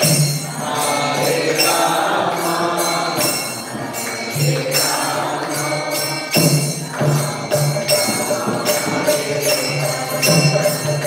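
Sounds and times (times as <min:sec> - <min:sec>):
hand cymbals jingling: 0:00.0 - 0:11.0
voices chanting together: 0:00.0 - 0:11.0.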